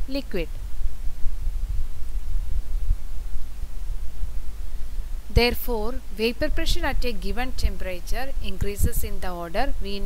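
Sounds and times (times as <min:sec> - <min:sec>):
low flickering hum and rumble: 0:00.0 - 0:10.0.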